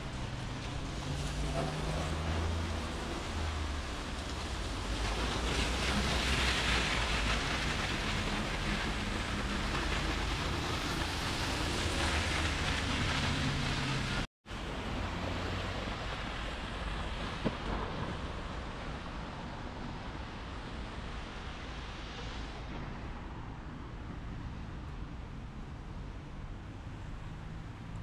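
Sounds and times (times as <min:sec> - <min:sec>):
rain hissing: 0:00.0 - 0:25.2
car tyres on wet road: 0:00.0 - 0:28.0.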